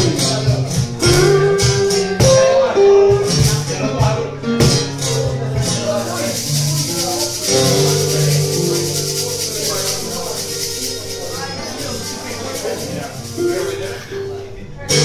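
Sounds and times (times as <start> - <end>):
cajon hits: 0.0 - 14.0
acoustic guitars playing: 0.0 - 15.0.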